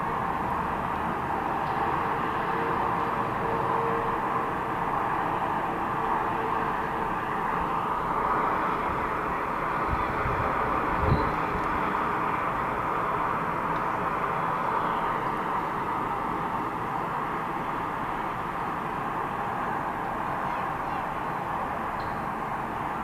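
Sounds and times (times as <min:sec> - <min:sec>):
highway traffic tyre hiss: 0:00.0 - 0:23.0.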